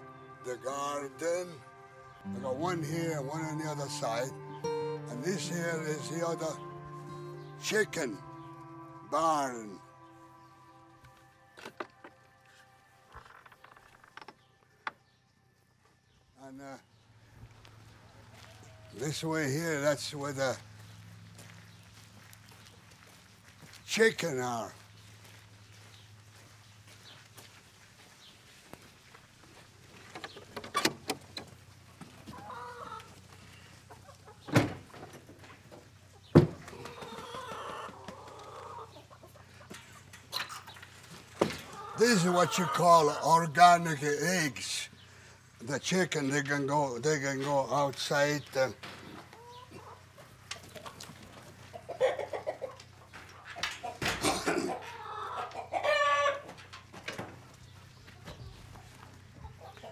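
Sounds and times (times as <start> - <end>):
chickens clucking: 29.8 - 44.0, 45.6 - 59.9
man coughing: 54.2 - 54.8
chicken loud held call: 54.3 - 56.5.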